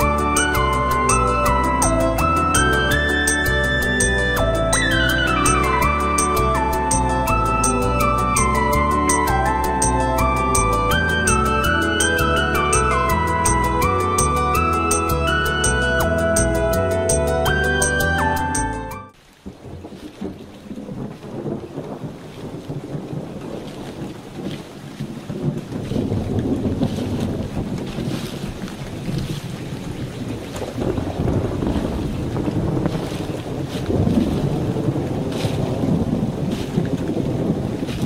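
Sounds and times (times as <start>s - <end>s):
low rumbling wind: 0.0s - 18.4s, 19.1s - 38.0s.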